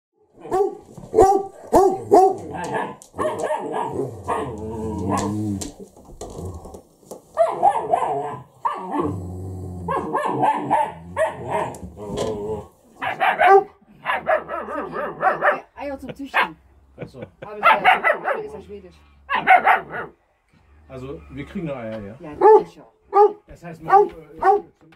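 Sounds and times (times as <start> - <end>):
puppy barking: 0.4 - 5.3, 7.4 - 9.1, 9.9 - 11.8, 13.0 - 15.8, 17.6 - 18.6, 19.3 - 20.2, 22.4 - 24.7.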